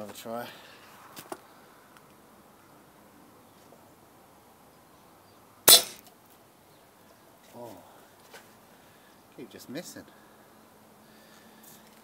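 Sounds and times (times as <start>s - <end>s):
air rifle shot: 5.7s - 6.0s.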